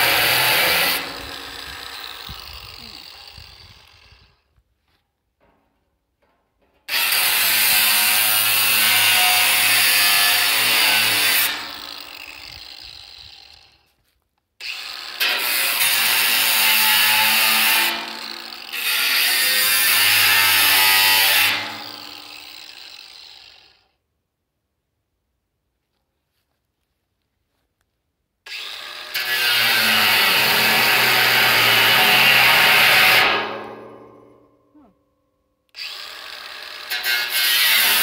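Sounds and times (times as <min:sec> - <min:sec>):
angle grinder cutting steel: 0:00.0 - 0:04.4, 0:06.9 - 0:13.9, 0:14.6 - 0:23.8, 0:28.5 - 0:34.9, 0:35.7 - 0:38.0.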